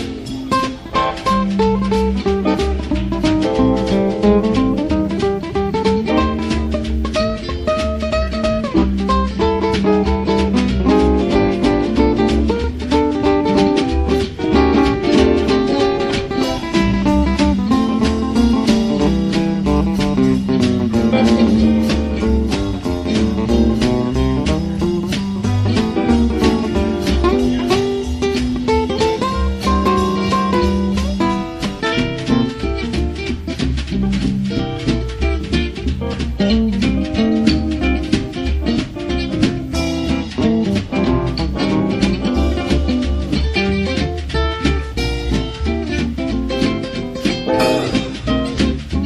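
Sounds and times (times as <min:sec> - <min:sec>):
drums: 0:00.0 - 0:49.0
gliding steel guitar notes: 0:00.0 - 0:49.0
plucked guitar: 0:00.0 - 0:49.0
ukulele: 0:00.0 - 0:49.0
washtub bass: 0:00.0 - 0:49.0.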